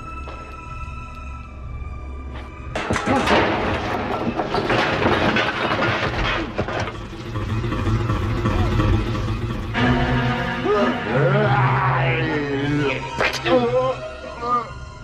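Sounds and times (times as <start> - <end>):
horror film score: 0.0 - 15.0
clattering commotion: 2.7 - 10.6
loud crash: 2.8 - 11.1.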